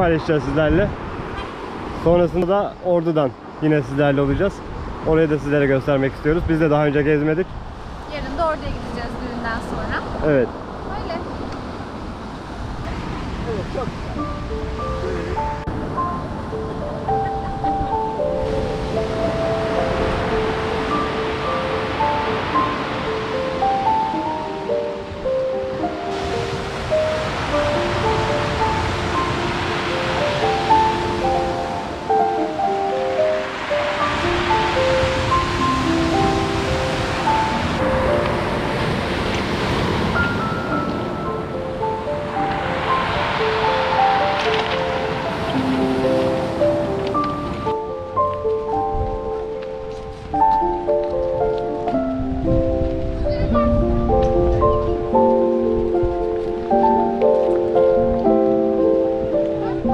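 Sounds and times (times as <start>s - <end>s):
melody of short clear notes: 14.1s - 59.9s
surf breaking on pebble beach: 25.8s - 47.7s.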